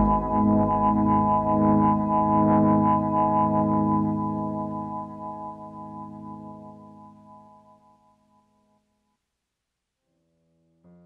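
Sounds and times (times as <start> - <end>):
keyboard chord with upright bass: 0.0 - 5.0.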